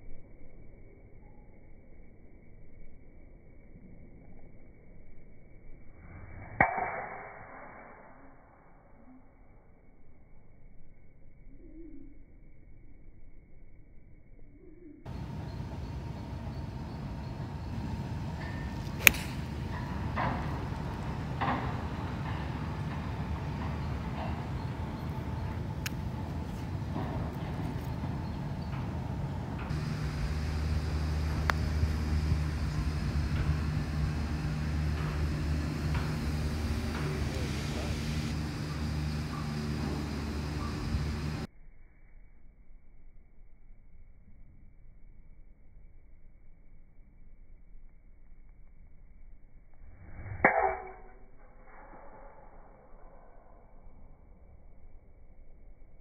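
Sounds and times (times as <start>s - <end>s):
outdoor noise: 0.0s - 56.0s
steady low hum: 0.0s - 56.0s
golf club striking ball: 17.2s - 28.4s, 29.6s - 41.5s, 50.2s - 51.3s.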